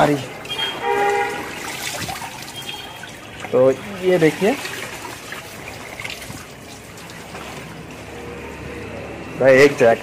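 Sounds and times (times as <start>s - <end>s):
water trickling and sloshing: 0.0s - 9.0s.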